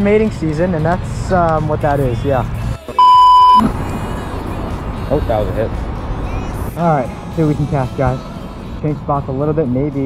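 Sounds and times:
high test-tone beep: 3.0s - 3.7s.

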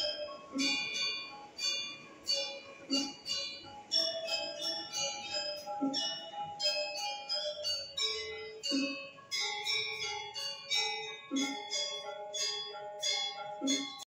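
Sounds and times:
gamelan music: 0.0s - 14.0s.

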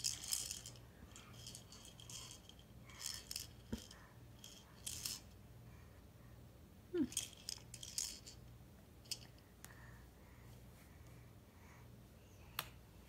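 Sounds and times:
plastic ring toy rattling: 0.0s - 5.4s, 7.1s - 8.4s, 9.1s - 9.3s.

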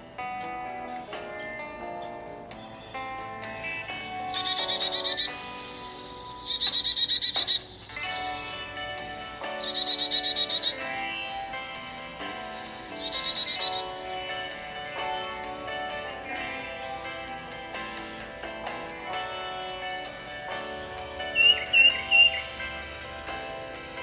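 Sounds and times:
soft guitar music: 0.0s - 24.0s
bird call with high trill: 3.8s - 11.6s, 12.2s - 14.5s, 18.9s - 20.3s, 21.2s - 22.6s.

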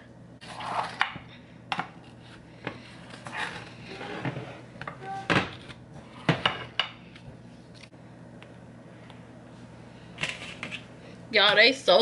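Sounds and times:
knife scraping: 0.4s - 1.0s.

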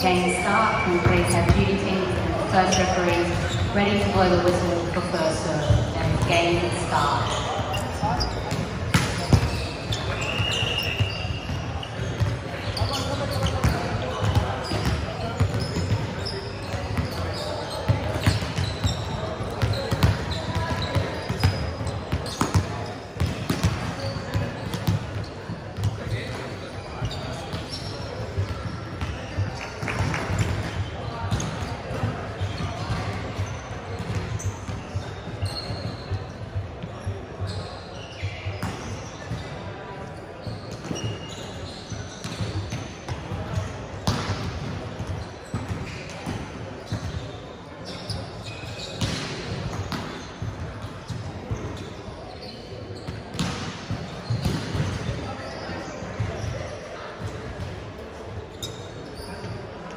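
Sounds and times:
players' voices chattering: 0.0s - 59.9s.

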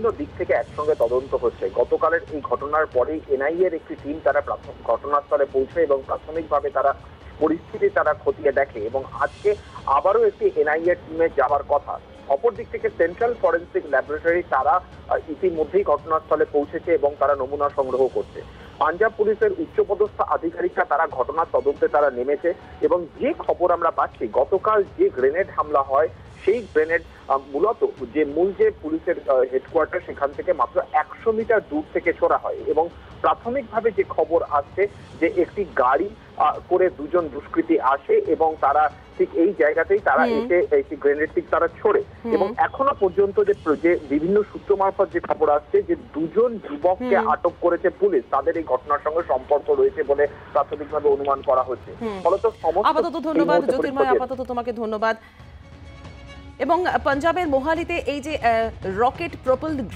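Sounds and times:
man talking over a phone line: 35.4s - 54.2s.

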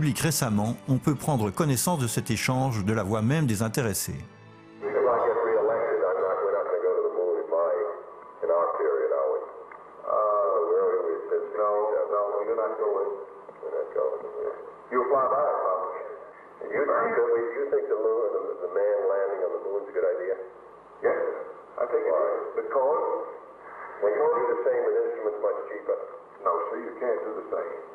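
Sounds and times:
men talking on old tape: 0.0s - 27.9s.

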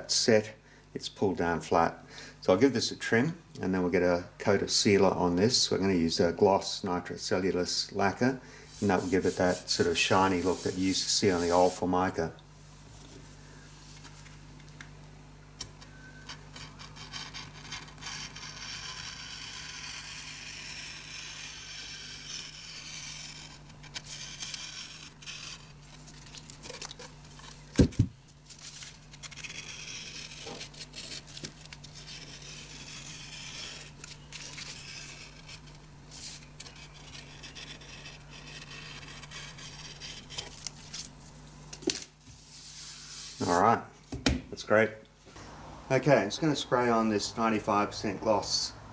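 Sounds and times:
blade scraping along board edge: 16.6s - 25.8s, 28.7s - 40.6s
paper tearing and crinkling: 28.5s - 41.2s.

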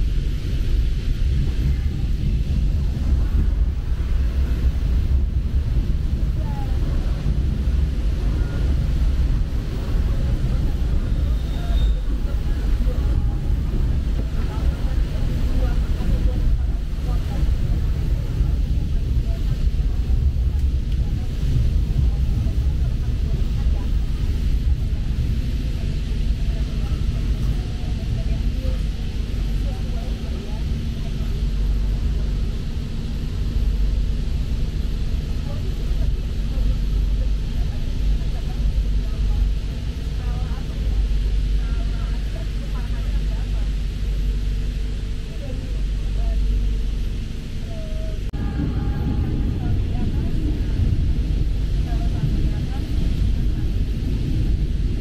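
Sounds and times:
train carriage rumble: 0.0s - 55.0s.

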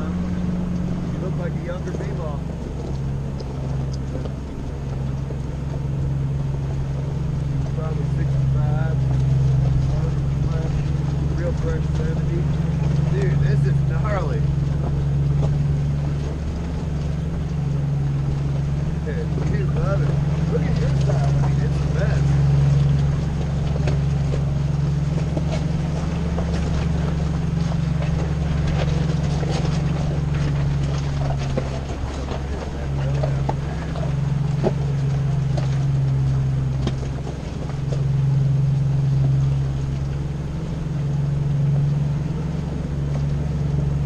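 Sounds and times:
engine running at low revs: 0.0s - 44.0s.

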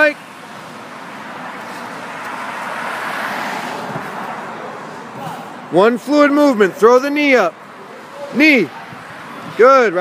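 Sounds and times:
car passing by: 0.3s - 5.8s.

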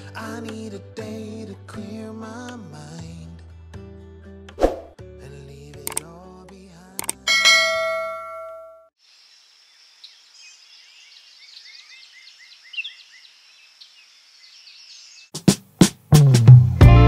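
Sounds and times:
click: 5.8s - 6.1s, 7.0s - 7.2s
bell-like notification ding: 7.3s - 8.9s
birds chirping: 9.2s - 15.3s.

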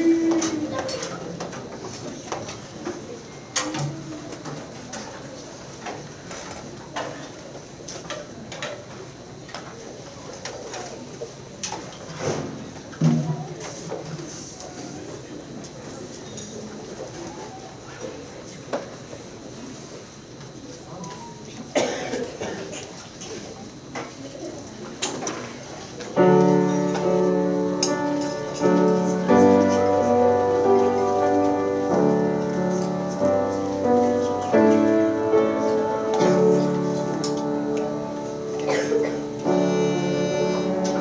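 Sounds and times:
faint audience murmur: 0.0s - 41.0s.

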